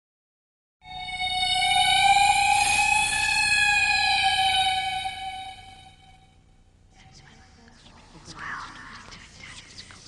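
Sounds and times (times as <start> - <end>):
held synthesizer tone: 0.8 - 6.4.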